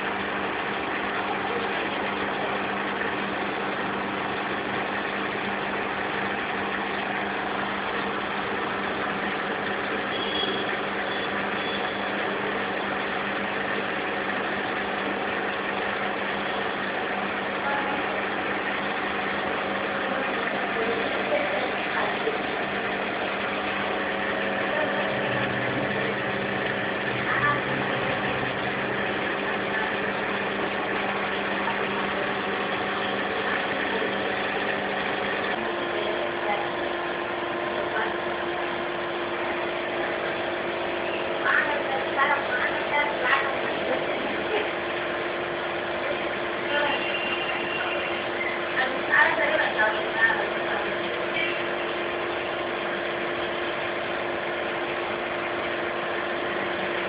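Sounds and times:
machine hum: 0.0 - 57.0.

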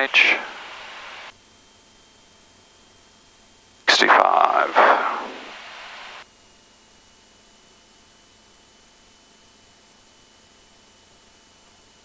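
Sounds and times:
headset intercom hiss: 0.0 - 1.3, 3.9 - 6.2.

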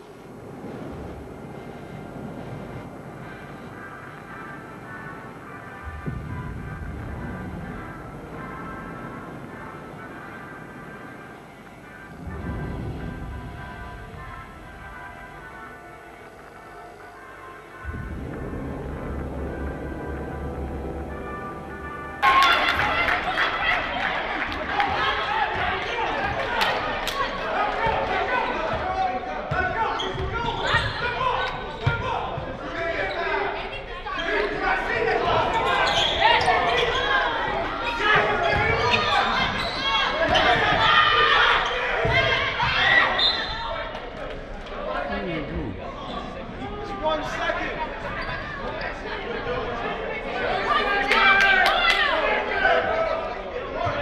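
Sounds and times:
music: 0.8 - 30.3
players and spectators shouting: 22.2 - 43.9, 46.1 - 54.0.

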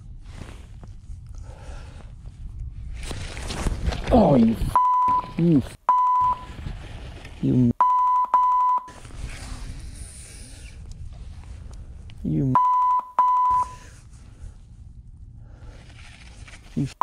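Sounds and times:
rustling: 0.0 - 5.1, 6.1 - 7.7, 13.4 - 16.9
censor bleeps: 4.8 - 6.5, 7.8 - 9.0, 12.5 - 13.8
wind: 8.9 - 12.6.

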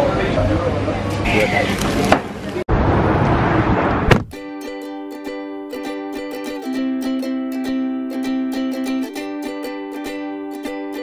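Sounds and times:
car road and engine noise: 1.8 - 4.4
plucked string music: 4.3 - 11.0.

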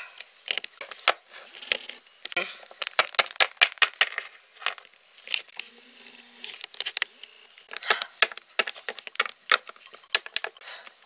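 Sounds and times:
plastic toy figurines clicking: 7.7 - 10.6.

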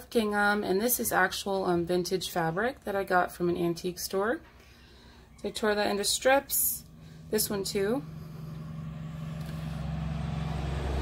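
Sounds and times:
steady low hum: 4.4 - 11.0
vehicle engine rumble: 5.3 - 11.0.

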